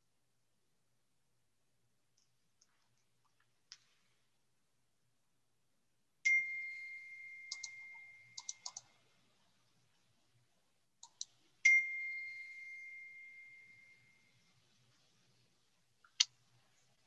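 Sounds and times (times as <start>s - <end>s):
bright ding: 6.3s - 8.4s, 11.7s - 14.3s.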